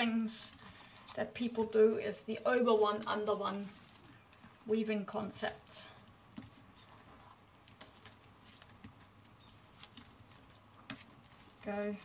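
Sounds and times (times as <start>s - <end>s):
crisp ticks of flax strips: 0.0s - 12.0s
flax strips rustling: 0.0s - 12.0s.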